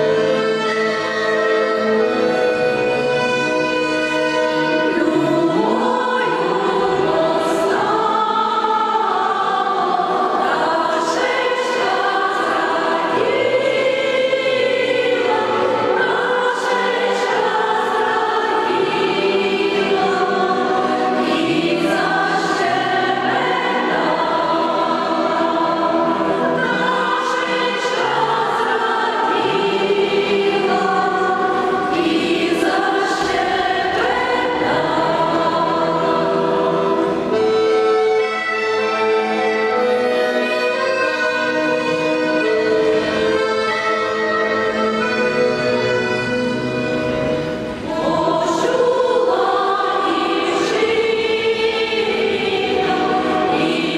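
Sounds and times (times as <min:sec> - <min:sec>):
women's choir singing: 0:00.0 - 0:53.9.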